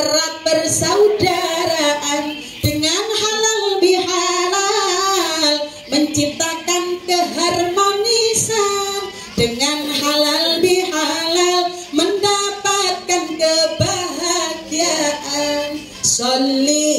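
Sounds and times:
woman singing into microphone: 0.0s - 16.9s.

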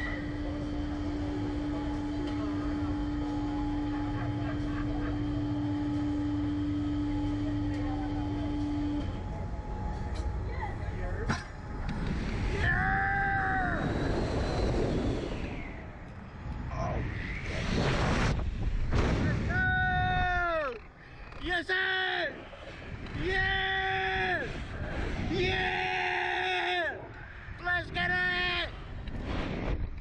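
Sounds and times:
machine hum: 0.0s - 30.0s
rushing wind: 11.5s - 21.4s, 22.2s - 30.0s.

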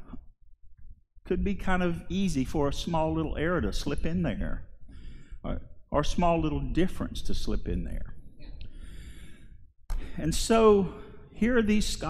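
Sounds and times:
man breathing softly: 4.8s - 5.5s, 8.6s - 10.2s.

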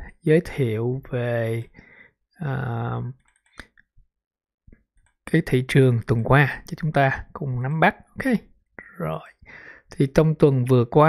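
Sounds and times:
person speaking: 2.4s - 3.8s, 5.3s - 11.0s.

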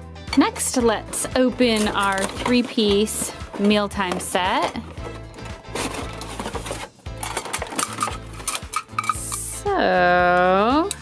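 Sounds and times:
background music: 0.0s - 11.0s
packaging crackling: 1.6s - 9.2s
plastic pieces clicking: 1.6s - 9.5s.

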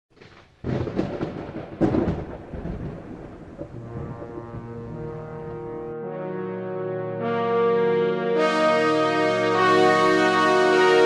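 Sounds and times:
thunder crack and rumble: 0.2s - 5.9s.

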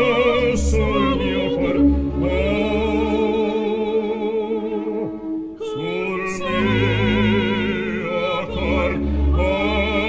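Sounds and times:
soprano operatic singing: 0.0s - 10.0s
low male voice singing: 5.6s - 10.0s.

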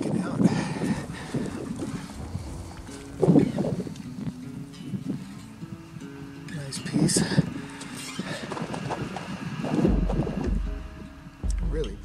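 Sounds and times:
low rumble: 0.8s - 4.6s, 9.8s - 12.0s
footsteps crunching on clay: 1.0s - 4.5s.

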